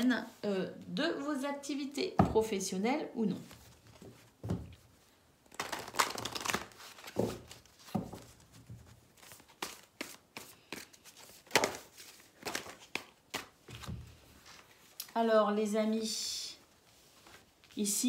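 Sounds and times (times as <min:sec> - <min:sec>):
cards being shuffled: 0:05.5 - 0:15.0.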